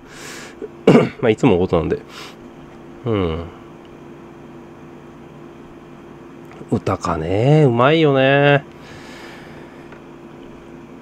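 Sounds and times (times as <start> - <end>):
air conditioner hiss: 0.0 - 11.0
faint steady hum: 0.0 - 11.0.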